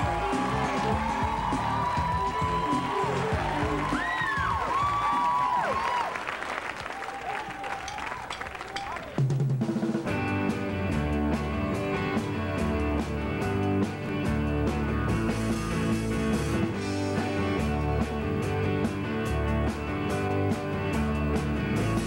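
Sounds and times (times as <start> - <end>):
loud electric guitars: 0.0 - 5.4, 10.0 - 22.0
drum-heavy band music: 0.0 - 5.9, 7.7 - 22.0
audience clapping and cheering: 0.0 - 9.4.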